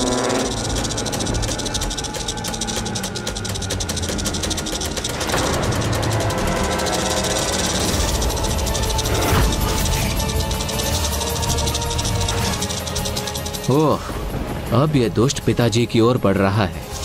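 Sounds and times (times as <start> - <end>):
legs skittering clicks: 0.0 - 14.4
background music: 0.0 - 17.0.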